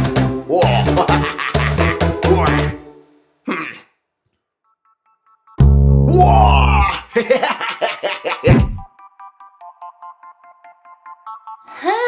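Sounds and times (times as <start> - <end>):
double bass: 5.6 - 6.3.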